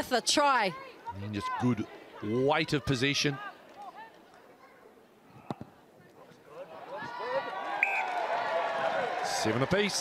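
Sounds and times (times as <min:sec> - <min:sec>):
spectators shouting and cheering: 0:06.6 - 0:10.0.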